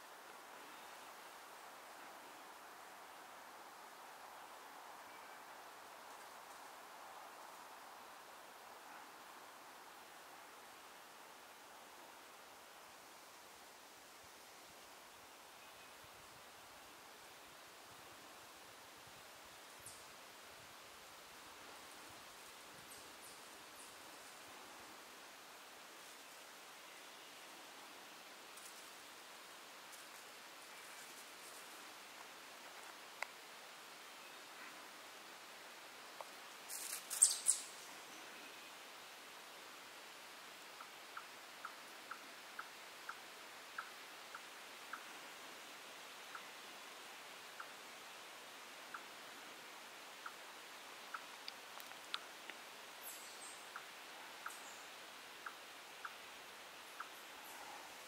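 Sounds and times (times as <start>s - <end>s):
woodland background hiss: 0.0s - 58.0s
faint ticks: 28.5s - 29.0s, 29.9s - 33.4s, 36.1s - 37.7s, 51.0s - 54.8s.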